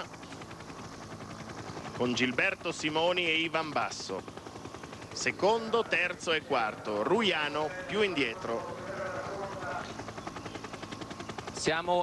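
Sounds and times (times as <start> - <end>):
helicopter rotor chopping: 0.0 - 12.0.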